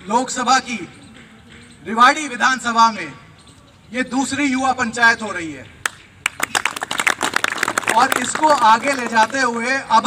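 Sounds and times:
crowd clapping: 5.8s - 9.6s.

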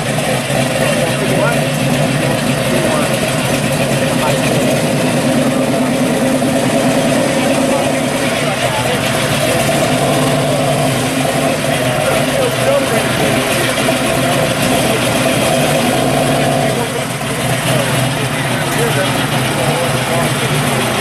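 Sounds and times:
car engine running slowly: 0.0s - 21.0s.

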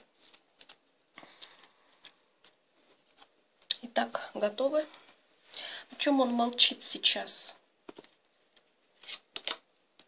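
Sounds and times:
cards shuffled by hand: 0.0s - 3.4s, 7.9s - 10.0s.

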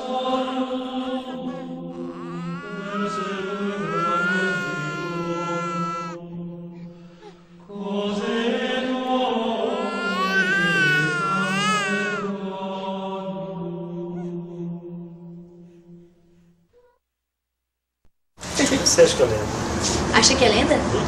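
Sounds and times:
high wavering wordless wail: 1.2s - 6.3s, 9.4s - 12.4s.

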